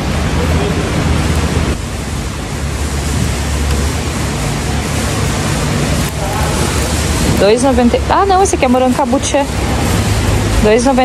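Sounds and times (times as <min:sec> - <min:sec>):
supermarket background din: 0:02.6 - 0:11.0.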